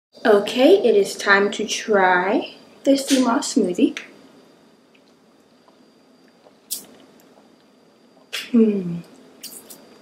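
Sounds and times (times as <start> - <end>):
wet mouth sound: 6.4 - 7.4, 9.4 - 9.9.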